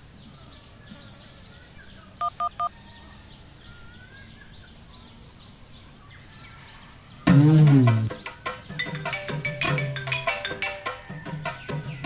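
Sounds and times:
phone keypad dialing beeps: 2.2 - 2.7.

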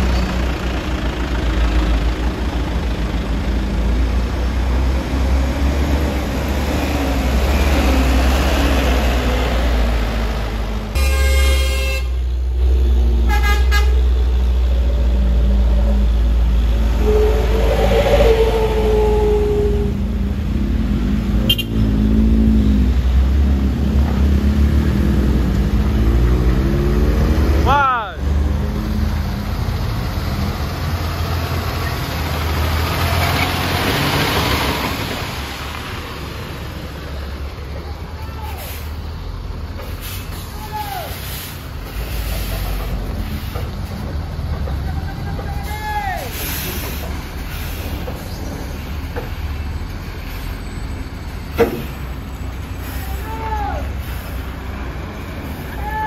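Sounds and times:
truck engines labouring: 0.0 - 56.0
vehicle horn toots: 11.0 - 12.2, 13.3 - 14.0, 17.0 - 19.5, 21.5 - 21.8.

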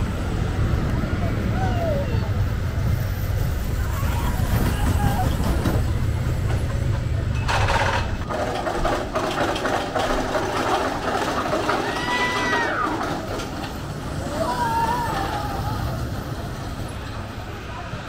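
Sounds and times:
crowd chatter: 0.0 - 9.0, 10.7 - 18.0.

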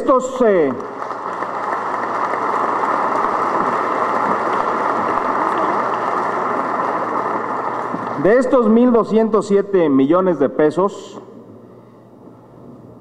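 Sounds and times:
audience applause: 0.0 - 8.6.

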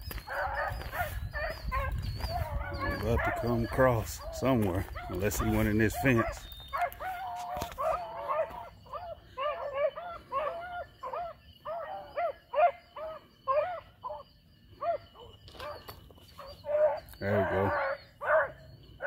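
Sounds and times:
hounds baying: 0.0 - 19.0.

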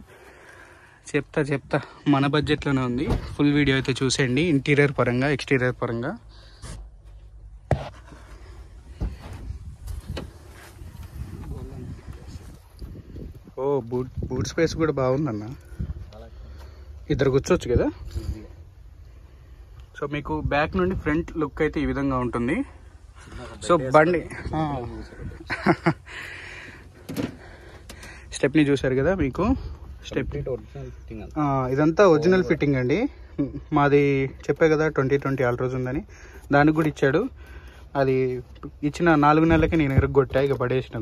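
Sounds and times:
microphone handling noise: 7.6 - 13.5.

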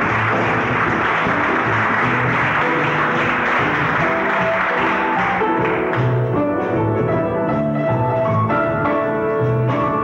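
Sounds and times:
live band music: 0.0 - 10.0.

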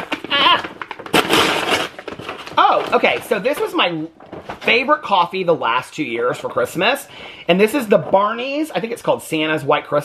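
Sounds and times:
package tearing open: 0.0 - 3.6.

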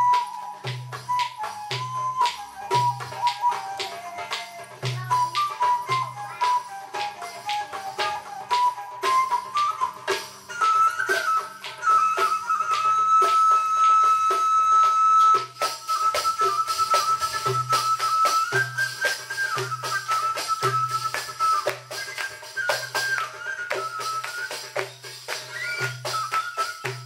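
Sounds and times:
hand percussion strokes: 0.0 - 27.0.

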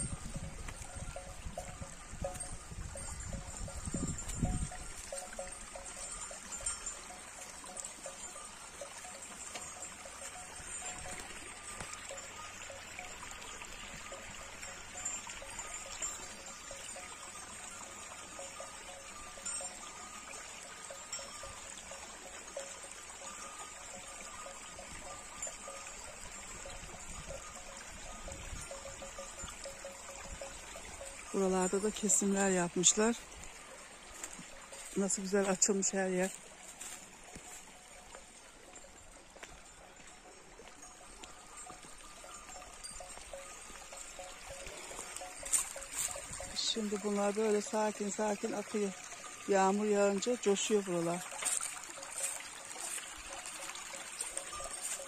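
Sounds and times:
wind rumble on microphone: 0.0 - 5.7
cowbells ringing: 0.0 - 55.0
running water trickling: 0.0 - 55.0.

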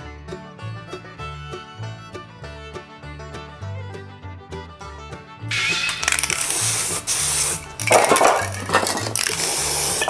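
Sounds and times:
spray paint can hissing: 5.5 - 10.0.

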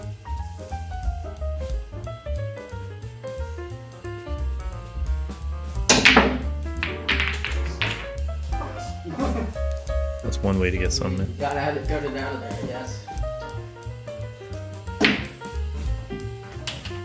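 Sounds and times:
background music: 0.0 - 17.0
billiard balls clacking: 4.6 - 8.8, 14.8 - 17.0
pool cue striking ball: 5.8 - 8.2, 14.9 - 17.0.

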